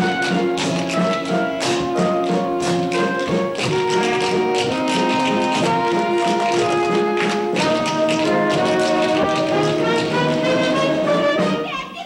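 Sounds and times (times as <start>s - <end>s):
tap dancing on stage boards: 0.0s - 11.9s
brass band playing show tune: 0.0s - 12.0s.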